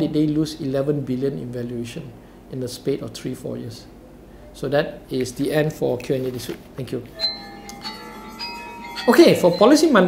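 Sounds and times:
bell-like chime notes: 7.2 - 10.0.

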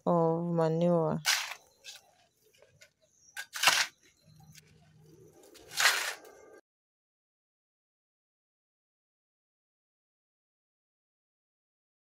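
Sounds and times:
shovel scraping into soil: 1.2 - 2.0, 3.4 - 4.0, 5.6 - 6.4.

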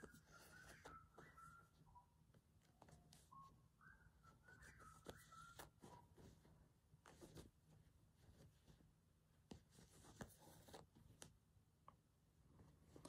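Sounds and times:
soft whistling: 0.0 - 6.3.

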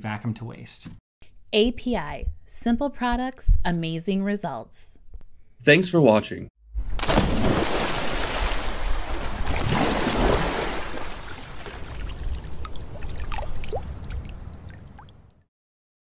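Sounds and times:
running gurgling water: 8.0 - 15.3.

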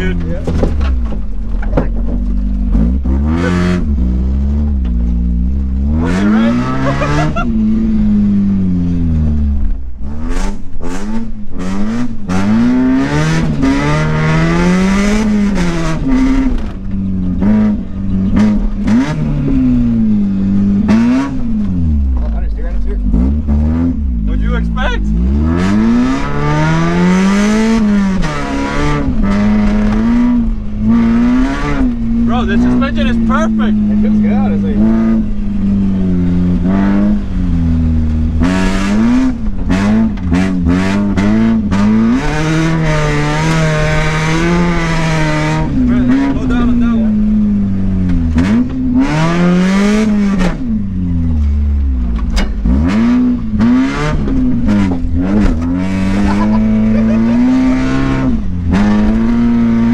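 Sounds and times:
car engine revving and shifting: 0.0 - 59.9
sharp knocks and rattles: 0.2 - 2.5.

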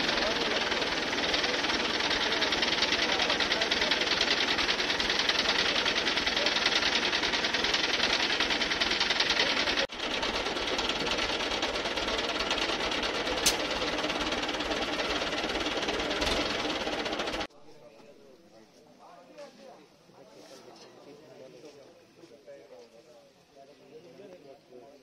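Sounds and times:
heavy machine engine clattering: 0.0 - 17.5
sharp click: 13.4 - 13.7.

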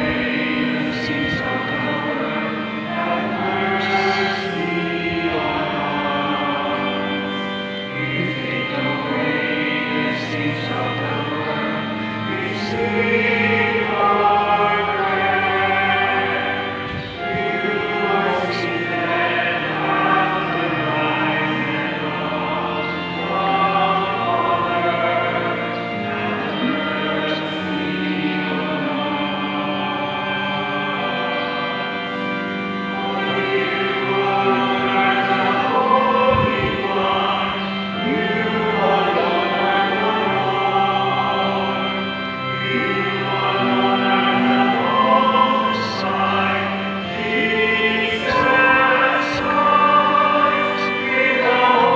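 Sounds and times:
choir singing a hymn: 0.0 - 51.9
organ: 0.0 - 51.9.

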